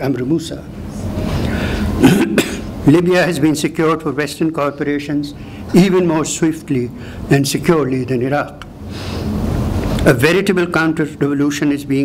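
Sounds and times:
man coughing: 2.0s - 2.8s.

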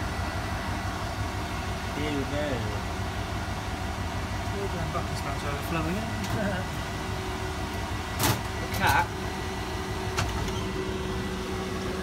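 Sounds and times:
washing machine humming: 3.0s - 12.0s.

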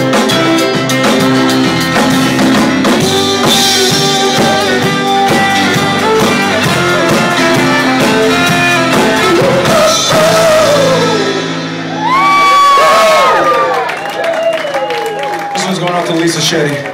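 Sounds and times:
instrumental rock band: 0.0s - 16.6s.

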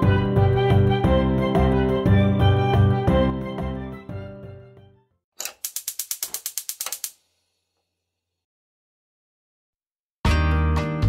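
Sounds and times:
background music: 0.0s - 5.0s
rapid mechanical clicks: 5.4s - 7.2s.

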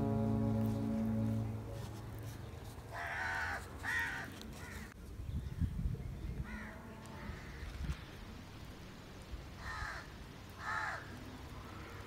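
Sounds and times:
crow cawing: 3.0s - 4.9s, 9.6s - 11.1s.

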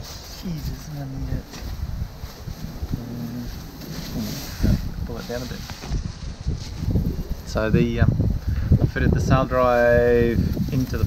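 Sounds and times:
wind buffeting microphone: 0.0s - 11.0s
short low voiced hum: 2.6s - 5.2s.

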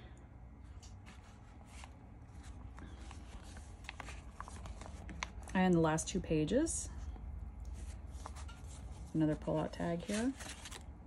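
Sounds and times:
paper rustling: 1.0s - 5.6s, 7.8s - 10.9s.

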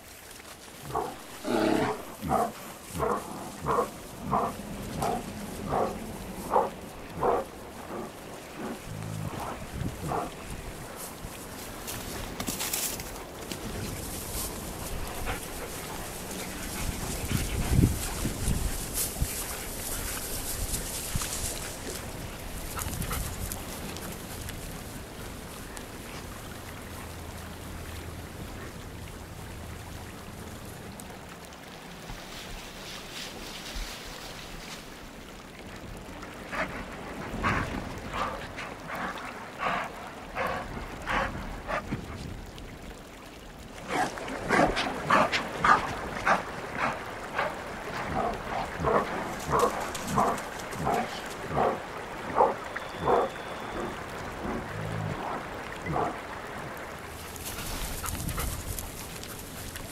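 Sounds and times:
wolves barking and yipping: 0.9s - 10.4s, 43.9s - 56.2s.

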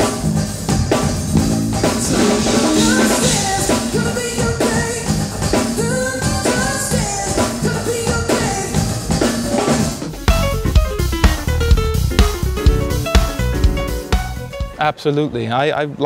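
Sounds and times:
drum kit: 0.0s - 14.8s
keyboard: 0.0s - 15.0s
electric bass: 0.7s - 4.2s, 10.1s - 14.6s
male lead vocals: 2.0s - 4.1s.

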